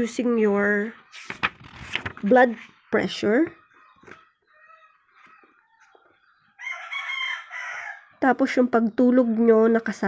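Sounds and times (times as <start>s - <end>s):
rooster crowing: 3.8s - 8.2s.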